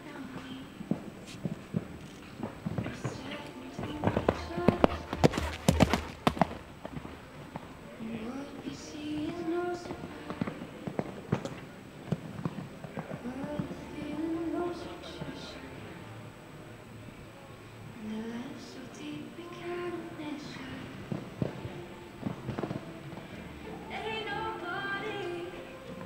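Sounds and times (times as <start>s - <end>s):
horse hoofbeats cantering on sand: 1.4s - 7.2s.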